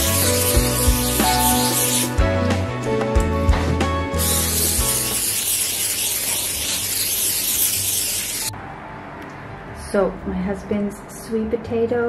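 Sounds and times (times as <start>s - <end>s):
aerosol spray can hissing: 0.0s - 2.2s, 4.1s - 8.5s
background music with a beat: 0.0s - 5.2s.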